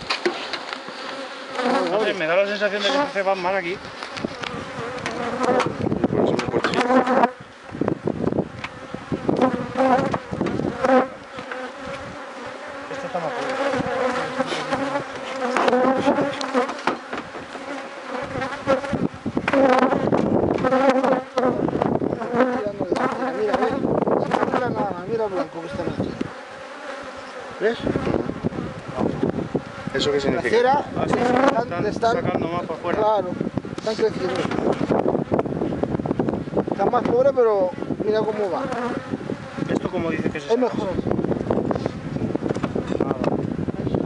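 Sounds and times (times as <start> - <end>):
honeybees buzzing: 0.0 - 44.0.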